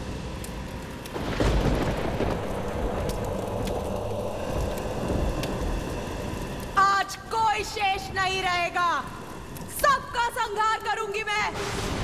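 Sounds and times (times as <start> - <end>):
rain hiss and patter: 0.0 - 12.0
thunder rumbling: 0.0 - 12.0.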